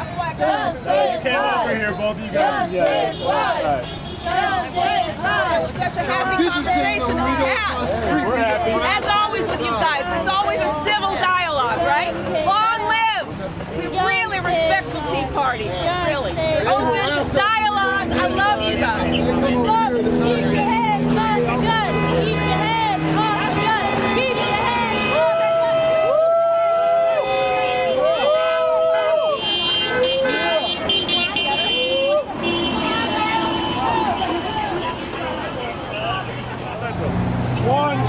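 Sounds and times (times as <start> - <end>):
people talking: 0.0 - 26.1, 29.7 - 38.0
city street traffic: 0.0 - 38.0
vehicle engines droning: 0.0 - 38.0.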